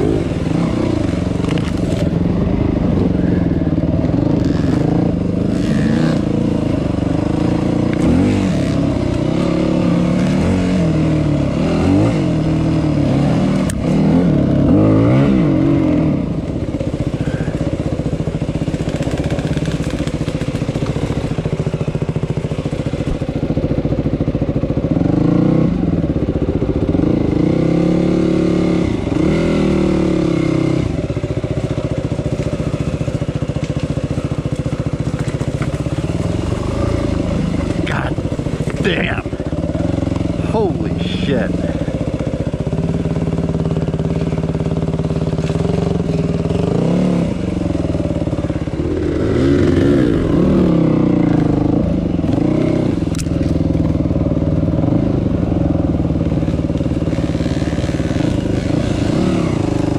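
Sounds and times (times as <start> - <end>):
dirt bike engine revving: 0.0 - 23.3, 24.9 - 26.1, 26.7 - 59.9.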